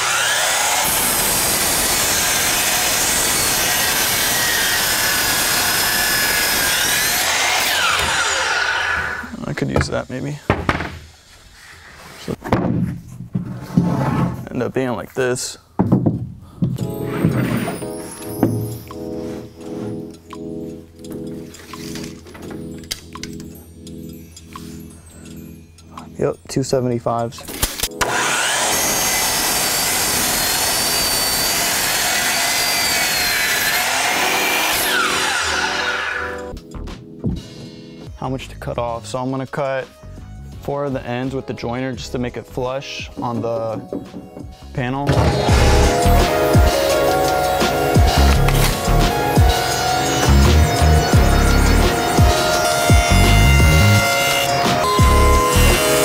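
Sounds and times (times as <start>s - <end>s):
miter saw cutting wood: 0.0s - 9.4s, 27.6s - 36.5s, 45.1s - 56.0s
saw blade spinning down: 0.0s - 9.4s, 28.0s - 36.5s, 45.3s - 56.0s
board dropped onto plywood: 10.5s - 11.1s, 12.3s - 14.4s.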